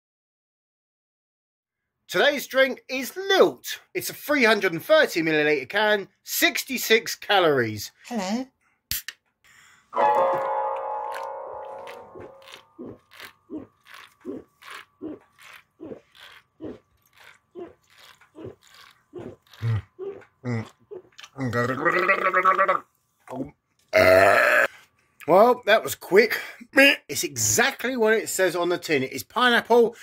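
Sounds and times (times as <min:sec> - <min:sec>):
man gulping drink: 0:11.1 - 0:21.7
short vocal sound: 0:19.2 - 0:21.8
man burping: 0:19.5 - 0:22.8, 0:23.9 - 0:24.7.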